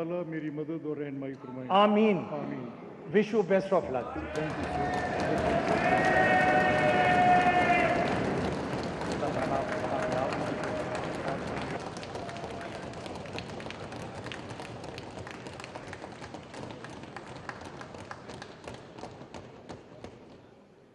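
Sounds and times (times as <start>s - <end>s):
crowd voices: 1.4s - 14.3s
people applauding: 4.1s - 20.1s.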